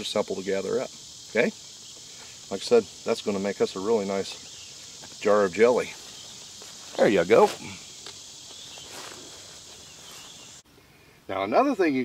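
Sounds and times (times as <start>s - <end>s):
insects chirring: 0.0s - 12.0s
soft footsteps on grass: 3.8s - 10.6s.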